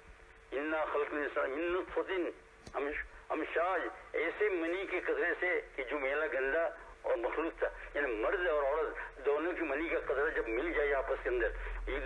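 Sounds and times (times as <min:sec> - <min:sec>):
man preaching: 0:00.5 - 0:12.0.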